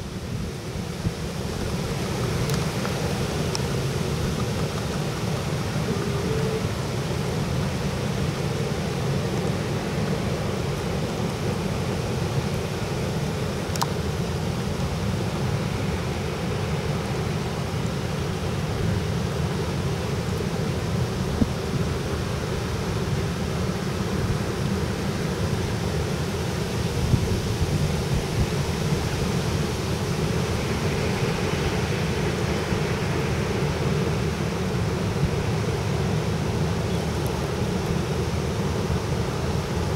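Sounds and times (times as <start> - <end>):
water washing along hull: 0.0 - 39.9
ship diesel engine drone: 1.6 - 21.1.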